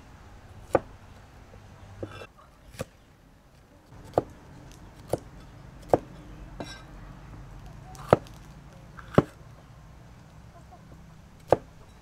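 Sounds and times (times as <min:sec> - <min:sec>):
cleaver chopping on cutting board: 0:04.0 - 0:04.3, 0:09.0 - 0:09.4.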